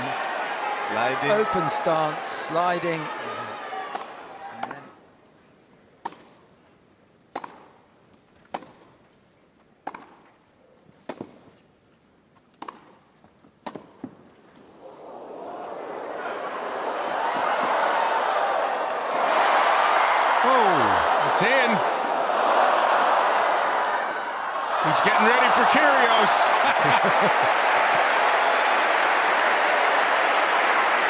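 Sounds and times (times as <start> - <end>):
crowd noise: 0.0 - 4.9, 14.8 - 31.0
racket striking tennis ball: 7.3 - 7.8, 8.5 - 8.9, 9.8 - 10.3, 11.1 - 11.4, 12.6 - 13.0, 13.6 - 14.1.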